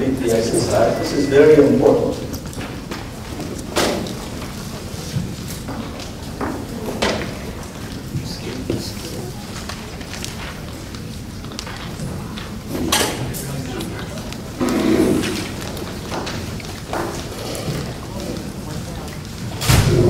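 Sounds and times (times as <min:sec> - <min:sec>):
murmur of people talking: 0:00.0 - 0:20.0
loud thump: 0:19.6 - 0:20.0.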